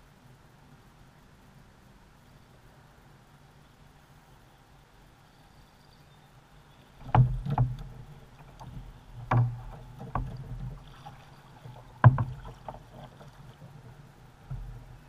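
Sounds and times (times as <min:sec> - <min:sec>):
paddle knocking on plastic hull: 0:07.0 - 0:14.9
water sloshing: 0:07.0 - 0:15.0.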